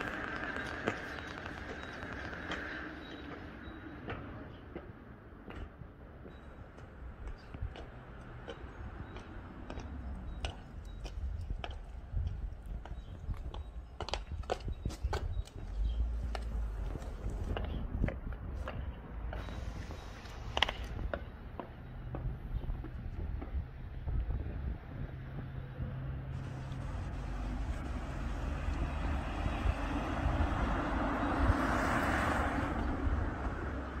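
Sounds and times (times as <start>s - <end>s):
broad rush of noise: 0.0s - 3.1s, 26.3s - 31.8s
boots clicking on cobblestones: 0.0s - 25.1s, 26.4s - 30.5s.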